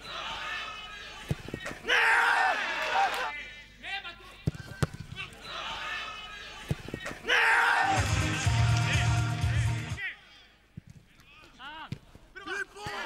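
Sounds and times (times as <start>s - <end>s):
players shouting: 0.0s - 3.3s, 5.2s - 10.3s, 12.4s - 13.0s
loud yell: 1.8s - 3.3s, 7.2s - 9.2s
football kicks: 4.4s - 5.4s, 11.9s - 12.2s.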